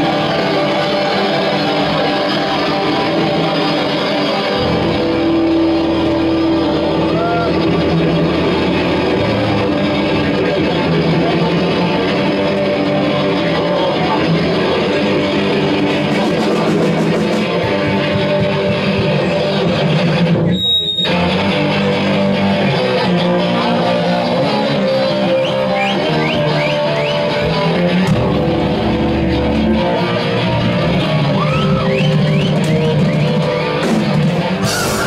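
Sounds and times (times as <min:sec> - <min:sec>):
live rock band playing: 0:00.0 - 0:35.0.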